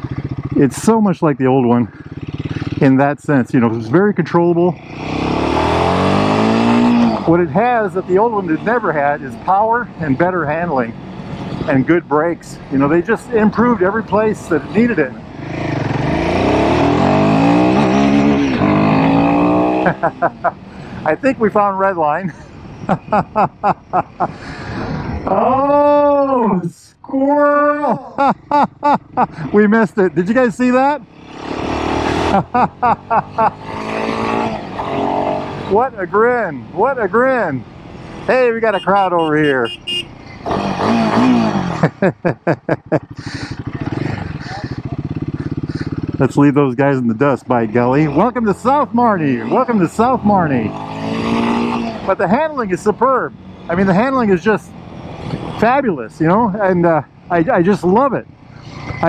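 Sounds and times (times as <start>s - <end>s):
motorcycle engine revving hard: 1.9s - 3.0s, 4.7s - 21.7s, 30.3s - 46.4s, 47.7s - 55.8s
person laughing: 13.0s - 14.1s, 19.7s - 20.7s, 22.2s - 26.7s, 27.3s - 29.6s, 32.1s - 33.7s, 41.7s - 46.0s.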